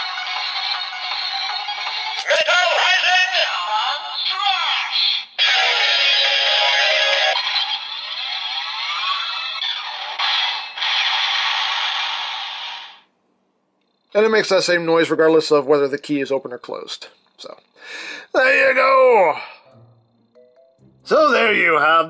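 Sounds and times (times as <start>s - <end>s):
toy speaker music: 0.0s - 13.0s
toy electronic sound effects: 2.3s - 13.0s.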